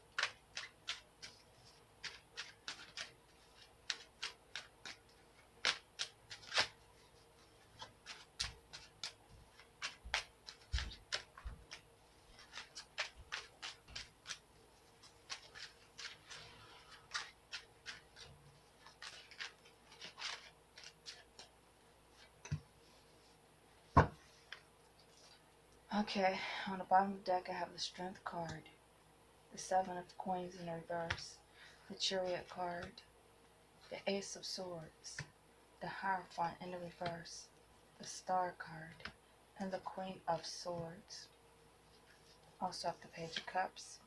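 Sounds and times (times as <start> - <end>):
cards being shuffled: 0.0 - 23.3, 41.9 - 43.8.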